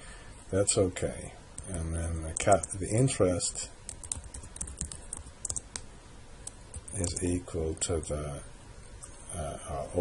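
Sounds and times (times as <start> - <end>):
keyboard typing: 2.3 - 2.8, 3.8 - 5.8, 6.4 - 7.3.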